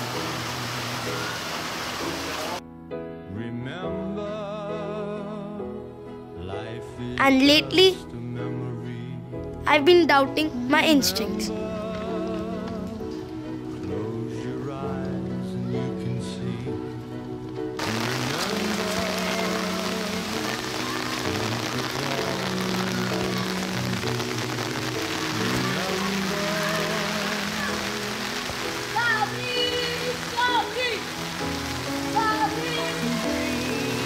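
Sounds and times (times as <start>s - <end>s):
heavy rain on wet paving: 0.0s - 2.6s, 11.8s - 14.0s, 17.8s - 34.0s.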